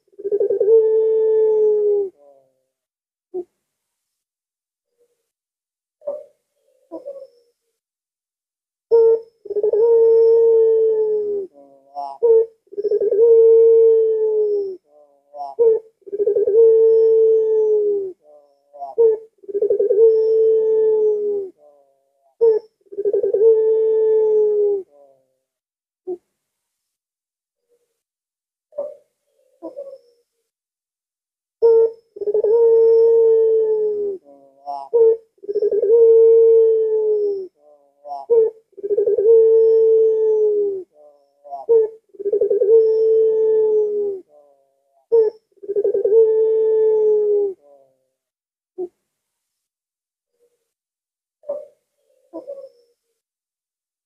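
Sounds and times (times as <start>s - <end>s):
dove cooing: 0.0s - 2.6s, 6.0s - 7.4s, 8.9s - 25.4s, 28.7s - 30.2s, 31.6s - 48.1s, 51.4s - 52.9s.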